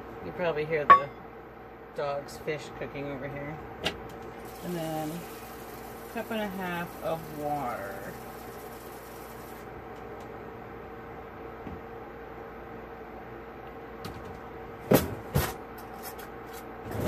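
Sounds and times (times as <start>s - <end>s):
food cooking on stove: 4.3s - 9.8s.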